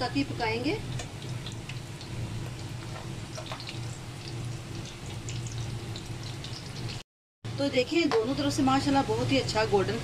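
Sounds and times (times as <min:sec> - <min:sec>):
food deep-frying in oil: 0:00.0 - 0:07.0
low steady hum: 0:00.0 - 0:10.0.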